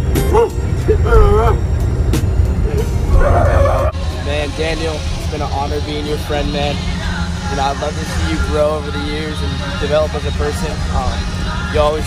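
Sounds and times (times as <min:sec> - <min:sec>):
bus engine rumble: 0:00.0 - 0:12.0
voices calling out: 0:00.0 - 0:12.0.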